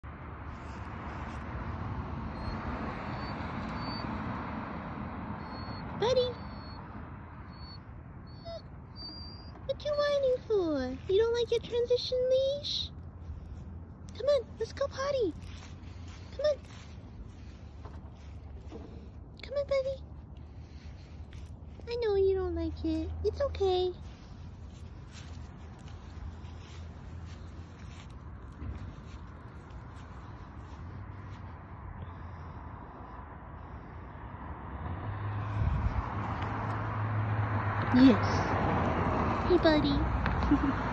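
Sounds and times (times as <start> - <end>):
road traffic rumble: 0.0 - 40.9
dog whining: 5.4 - 6.8, 7.5 - 9.7
dog stepping through dry grass: 14.4 - 19.1, 24.0 - 30.9.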